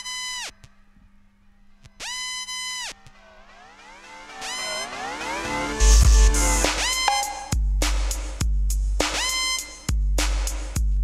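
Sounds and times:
low steady drone: 0:00.7 - 0:08.2
sliding synth bleeps: 0:02.1 - 0:07.7.

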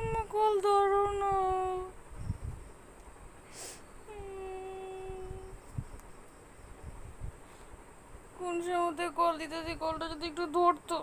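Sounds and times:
woman whining: 0:04.1 - 0:05.6.

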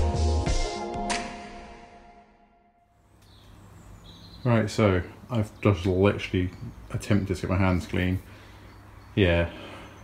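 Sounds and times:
background music: 0:00.0 - 0:02.9
faint outdoor ambient noise: 0:02.8 - 0:10.0.

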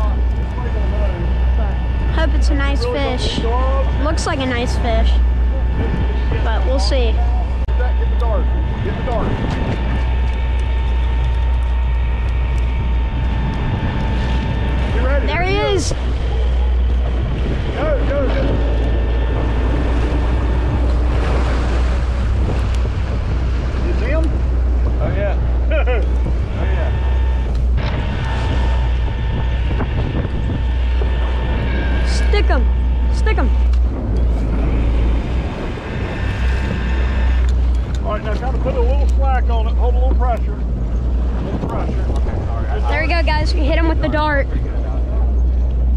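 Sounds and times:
boat engine rumble: 0:00.0 - 0:45.9
electric fishing reel whine: 0:00.0 - 0:45.9
wind on microphone: 0:00.0 - 0:45.9.

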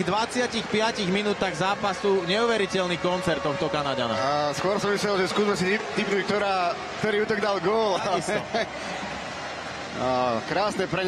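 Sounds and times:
ice hockey arena crowd noise: 0:00.0 - 0:11.0.

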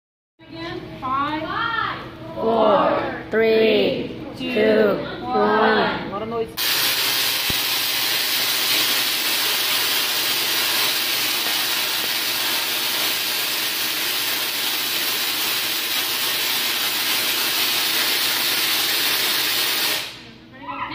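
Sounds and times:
tesla coil sparks buzzing: 0:06.6 - 0:20.4.

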